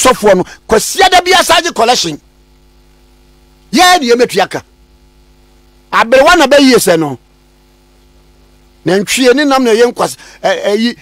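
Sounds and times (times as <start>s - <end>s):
man speaking: 0.0s - 2.2s, 3.7s - 4.7s, 5.9s - 7.2s, 8.8s - 11.0s
low electrical hum: 0.0s - 11.0s.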